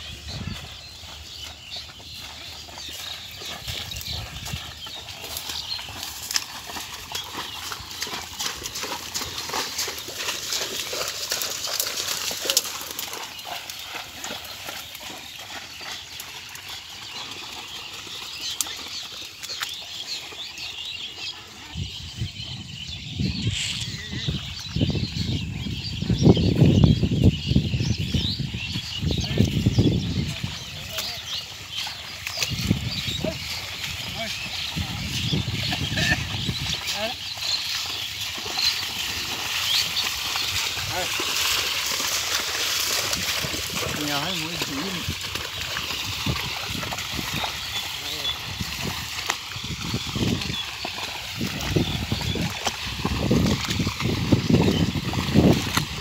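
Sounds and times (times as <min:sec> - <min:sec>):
hooves splashing through mud: 0:00.0 - 0:56.0.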